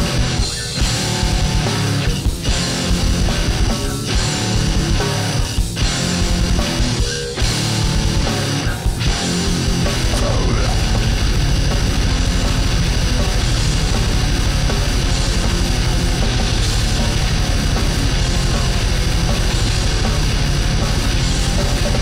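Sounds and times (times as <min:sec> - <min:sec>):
distorted guitars: 0:00.0 - 0:22.0
rapid-fire drumming: 0:00.0 - 0:22.0.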